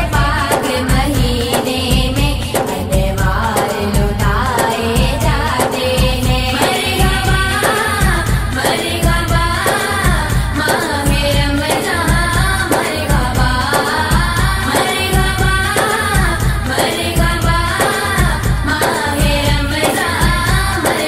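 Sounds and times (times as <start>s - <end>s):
steady low beat: 0.0s - 20.8s
person singing devotional song: 0.0s - 21.0s.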